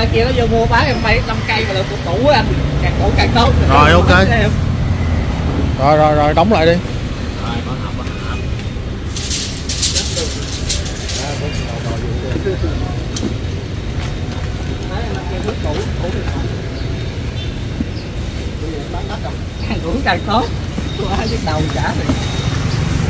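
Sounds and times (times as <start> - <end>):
low rumble of street traffic: 0.0 - 23.0
metal chains rattling: 9.0 - 12.2.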